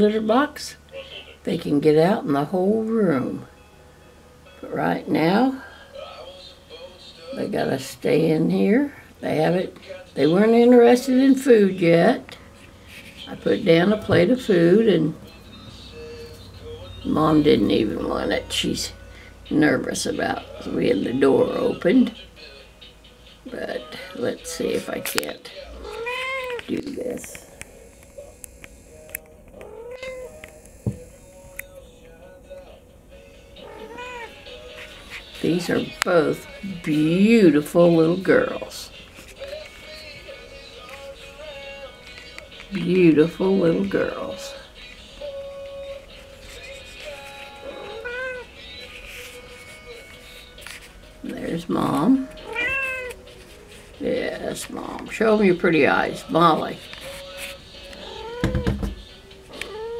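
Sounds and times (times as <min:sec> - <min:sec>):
cat mewing: 0:25.8 - 0:26.7, 0:29.6 - 0:30.4, 0:33.6 - 0:34.4, 0:47.6 - 0:48.5, 0:52.4 - 0:53.2, 0:58.0 - 0:58.8, 0:59.5 - 0:59.9.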